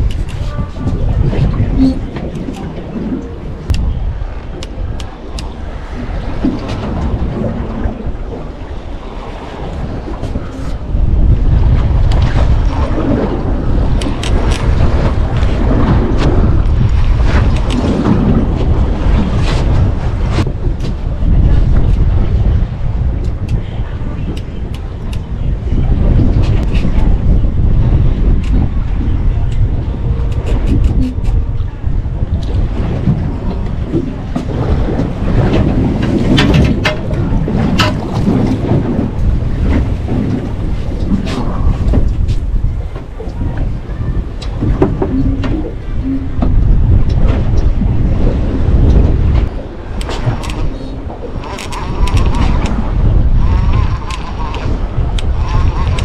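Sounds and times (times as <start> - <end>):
sea washing against boat: 0.0 - 56.0
wind buffeting microphone: 0.0 - 56.0.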